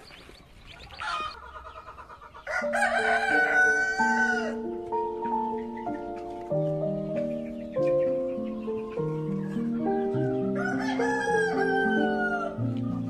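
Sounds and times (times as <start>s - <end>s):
chick chirps: 0.0s - 13.0s
chicken calls: 0.0s - 13.0s
rooster crowing: 2.4s - 4.7s, 10.4s - 12.7s
background music with held notes: 2.5s - 13.0s.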